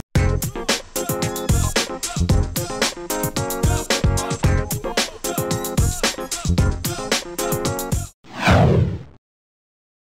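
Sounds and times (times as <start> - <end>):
whoosh falling in pitch: 8.3 - 9.1.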